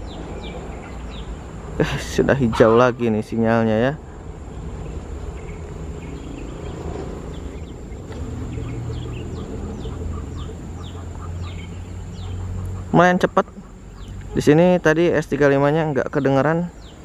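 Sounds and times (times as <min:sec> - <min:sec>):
train wagons rumbling on track: 0:00.0 - 0:14.3
bird chirping: 0:00.0 - 0:17.0.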